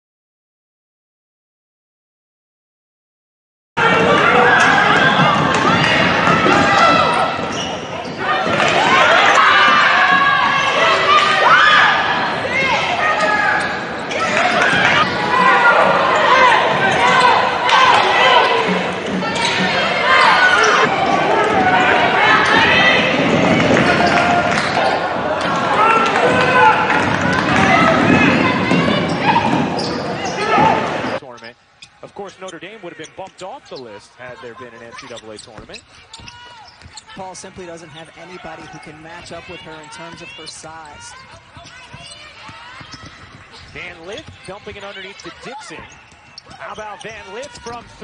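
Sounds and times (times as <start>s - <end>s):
players calling out: 3.8s - 48.0s
basketball bouncing: 3.9s - 11.3s, 20.8s - 31.1s, 40.9s - 48.0s
sneakers squeaking on hardwood: 3.9s - 11.8s, 12.6s - 48.0s.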